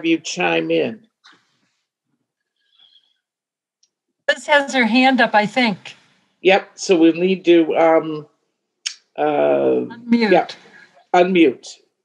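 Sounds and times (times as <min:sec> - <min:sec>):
faint high-pitched sound: 0:06.5 - 0:08.2, 0:09.2 - 0:11.6.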